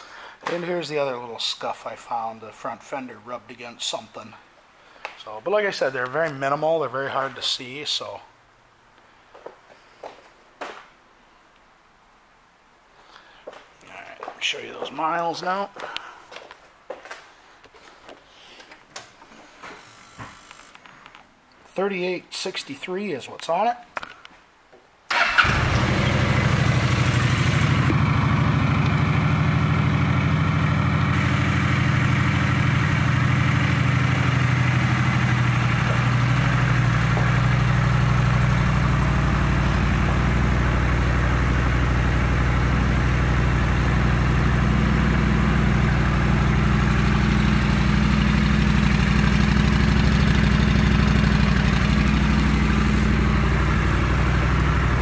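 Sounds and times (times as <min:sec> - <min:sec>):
motorcycle engine starting and idling: 0:25.1 - 0:55.0.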